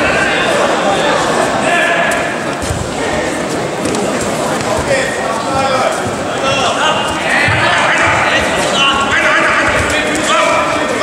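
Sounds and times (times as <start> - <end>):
crowd shouting in hall: 0.0 - 3.8, 4.9 - 11.0.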